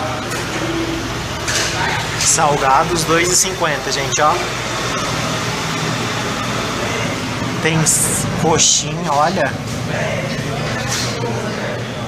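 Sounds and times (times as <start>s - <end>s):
constant background rush: 0.0s - 12.0s
steady mechanical hum: 0.0s - 12.0s.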